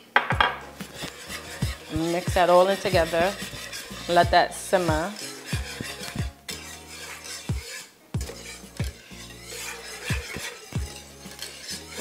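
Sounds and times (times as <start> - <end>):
whisk scraping frying pan: 0.4 - 12.0.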